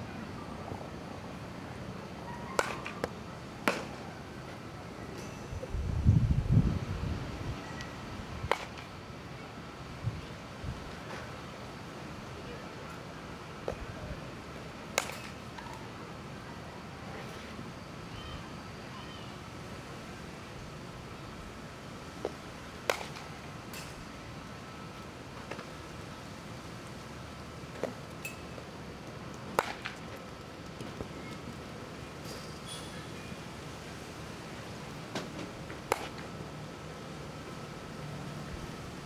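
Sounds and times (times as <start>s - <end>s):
outdoor wind noise: 0.0s - 39.0s
bat hitting baseballs: 2.6s - 4.0s, 8.5s - 8.9s, 14.9s - 15.7s, 22.2s - 24.0s, 29.5s - 30.2s, 35.2s - 36.3s.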